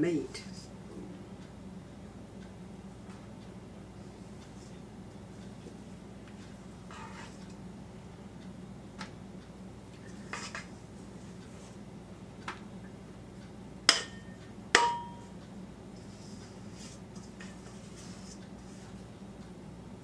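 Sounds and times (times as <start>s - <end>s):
utensil scraping dough from bowl: 6.9s - 7.5s, 10.2s - 10.7s, 16.0s - 19.0s.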